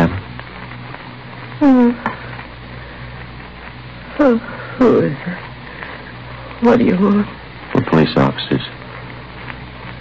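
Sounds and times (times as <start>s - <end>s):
old radio hiss and hum: 0.0s - 10.0s
woman moaning: 1.6s - 2.2s, 4.2s - 4.7s.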